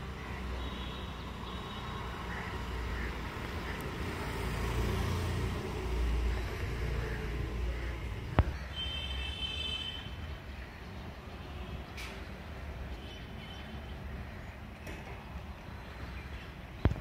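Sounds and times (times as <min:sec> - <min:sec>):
distant road traffic: 0:00.0 - 0:17.0.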